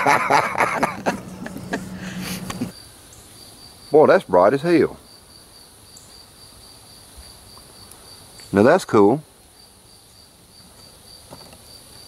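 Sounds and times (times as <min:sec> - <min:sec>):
high insect buzz: 0:00.0 - 0:04.0, 0:05.0 - 0:08.6, 0:09.3 - 0:12.0
insects chirping and trilling: 0:00.0 - 0:12.0.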